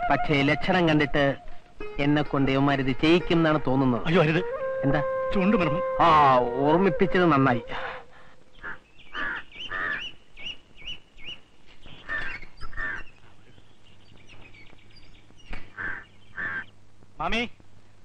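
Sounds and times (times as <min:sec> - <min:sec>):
low honking bird calls: 0:03.1 - 0:10.6, 0:15.5 - 0:16.8
birds chirping: 0:07.2 - 0:17.7.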